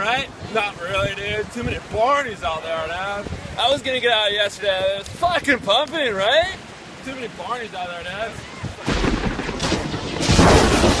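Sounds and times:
wind buffeting microphone: 0.0 - 7.0, 8.0 - 11.0.

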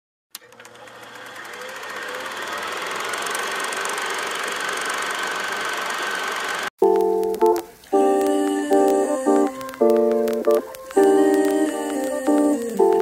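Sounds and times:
film projector clatter and whir: 0.4 - 6.7.

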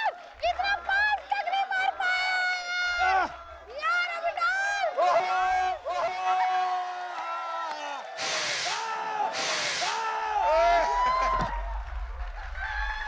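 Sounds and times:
bursts of hissing noise: 8.1 - 10.1
people laughing and shrieking: 8.7 - 13.0.

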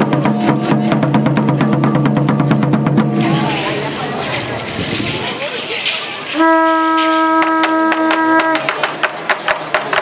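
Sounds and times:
drum beaten in fast roll: 0.0 - 5.4
hiss of crowd voices: 3.2 - 10.0.

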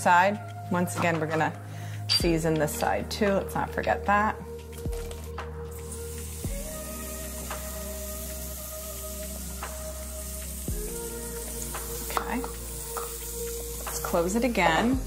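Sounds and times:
batter sizzling in waffle maker: 5.9 - 15.0.

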